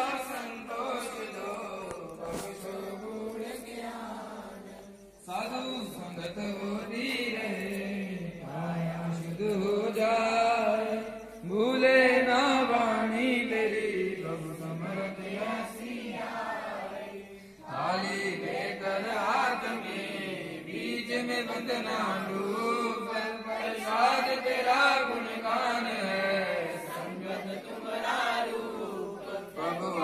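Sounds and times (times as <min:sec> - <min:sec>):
worshippers chanting a hymn: 0:00.0 - 0:30.0.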